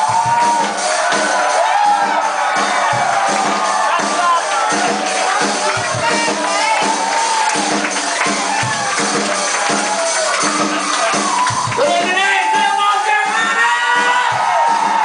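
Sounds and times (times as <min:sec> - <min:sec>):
crowd noise: 0:00.0 - 0:15.0
live band playing loud music: 0:00.0 - 0:15.0
steady drum beat: 0:00.0 - 0:15.0.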